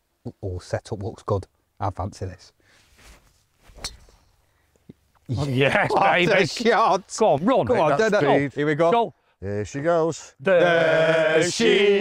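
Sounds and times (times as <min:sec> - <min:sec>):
golf club striking ball: 0:03.8 - 0:04.2.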